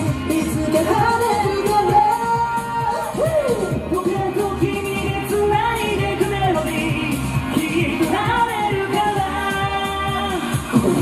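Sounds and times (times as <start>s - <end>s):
upbeat pop song with vocals: 0.0s - 11.0s.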